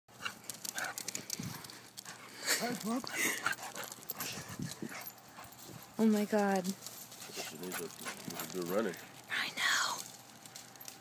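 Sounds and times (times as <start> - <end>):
dog paws tapping on asphalt: 0.1 - 9.4, 10.0 - 11.0.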